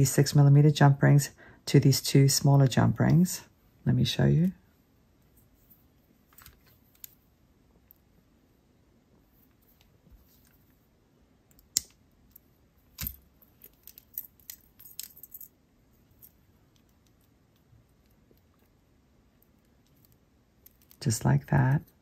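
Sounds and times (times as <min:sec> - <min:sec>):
metal clicks of jewelry pliers: 0:13.0 - 0:15.5.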